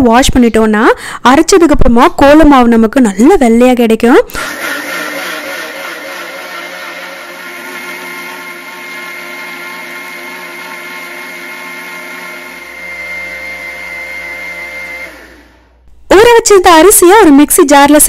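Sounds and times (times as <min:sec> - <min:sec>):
mixer grinder motor whine: 0:04.3 - 0:15.9.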